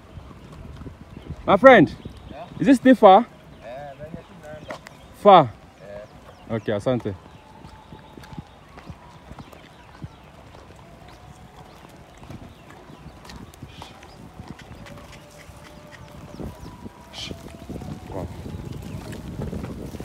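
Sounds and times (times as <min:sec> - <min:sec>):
hooves pattering on dirt: 0:00.0 - 0:20.0
goats calling: 0:01.0 - 0:20.0
footsteps scuffing the ground: 0:04.6 - 0:05.1, 0:06.2 - 0:20.0.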